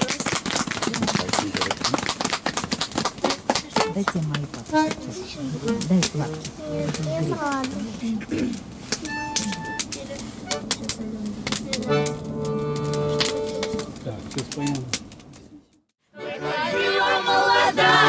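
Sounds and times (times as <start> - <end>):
voices talking: 3.5 - 15.7
held accordion notes: 3.7 - 7.2, 9.0 - 11.0, 11.7 - 13.9, 16.1 - 18.0
sharp clicks and crackles: 8.5 - 15.5.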